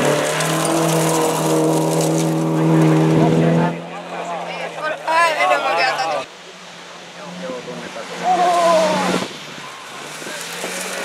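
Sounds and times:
tyres hissing on gravel: 0:00.0 - 0:02.6, 0:08.8 - 0:11.0
rally car engine at high revs: 0:00.0 - 0:11.0.

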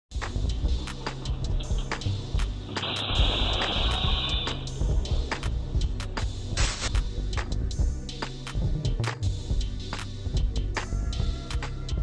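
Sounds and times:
background music with steady beat: 0:00.1 - 0:12.0.

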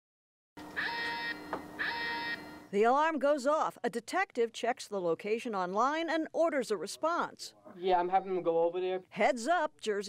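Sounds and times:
electronic alarm beeping: 0:00.8 - 0:02.7.

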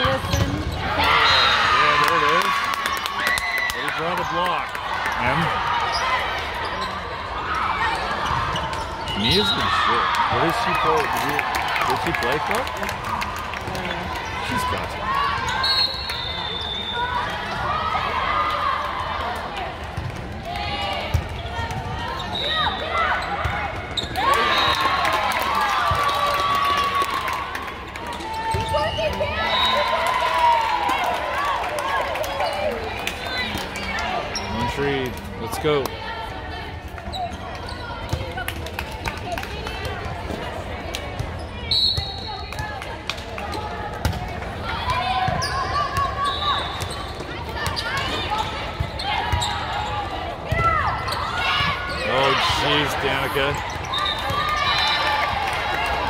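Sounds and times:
players shouting and chatting: 0:00.0 - 0:56.0.

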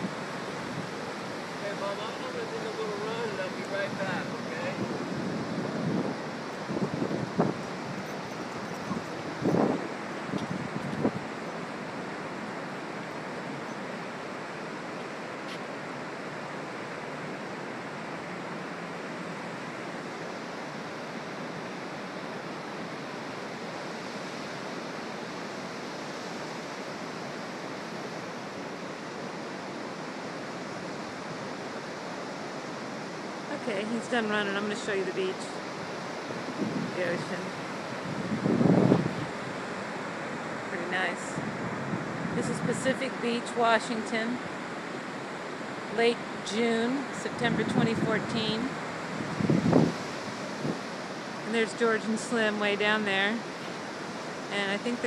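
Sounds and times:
ocean surf breaking: 0:00.0 - 0:55.0
wind blowing over microphone: 0:00.0 - 0:55.0.

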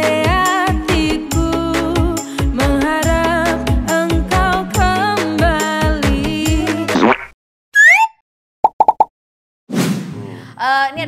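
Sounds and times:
cartoon rising glide: 0:07.8 - 0:08.2.

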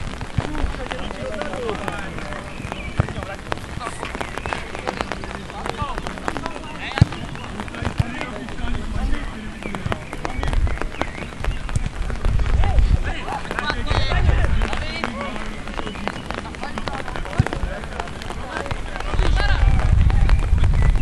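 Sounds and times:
wind buffeting microphone: 0:00.0 - 0:21.0
players shouting: 0:00.4 - 0:11.4, 0:12.4 - 0:19.8.

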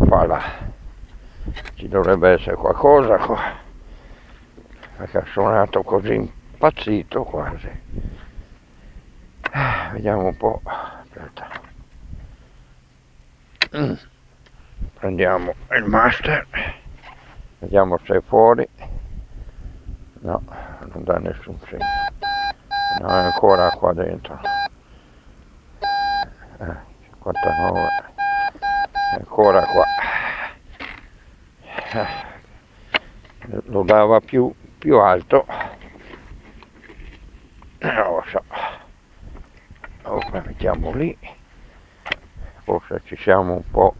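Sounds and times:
steady low rumble: 0:00.0 - 0:27.4, 0:28.0 - 0:43.9
man saying eh: 0:13.7 - 0:14.1, 0:31.7 - 0:32.4.

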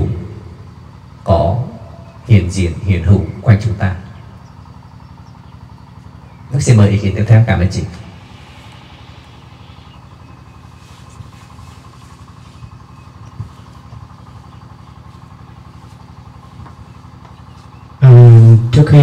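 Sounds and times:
quiet low hum: 0:00.0 - 0:19.0.

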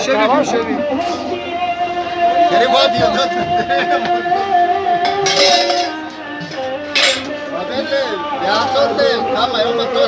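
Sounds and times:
faint background music: 0:00.0 - 0:10.0
metal kitchenware clinking: 0:05.0 - 0:07.4.

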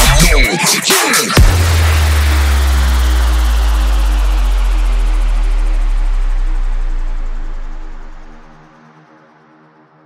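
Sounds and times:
deep sub-bass note: 0:01.4 - 0:08.7.

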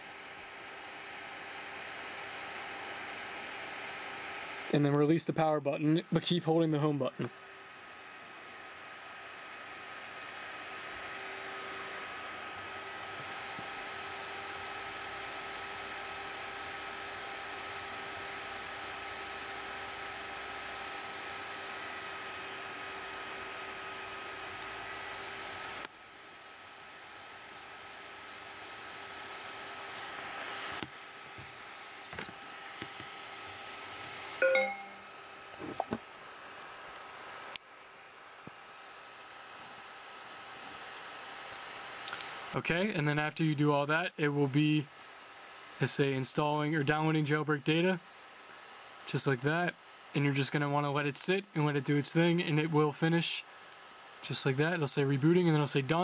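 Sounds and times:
low hum and hiss: 0:00.0 - 0:56.0
faint steady tones: 0:33.2 - 0:35.2.

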